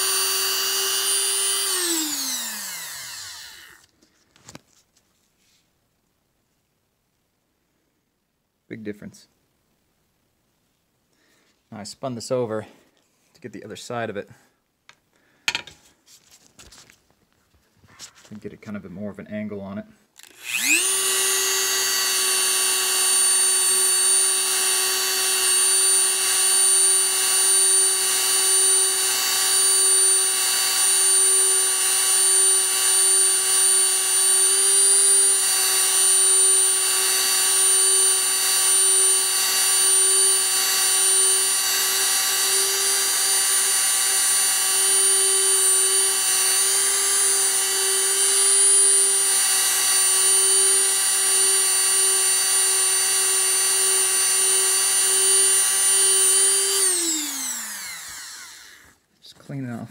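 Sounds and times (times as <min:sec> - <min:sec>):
rotary tool whining: 0:00.0 - 0:03.9, 0:20.2 - 0:59.0.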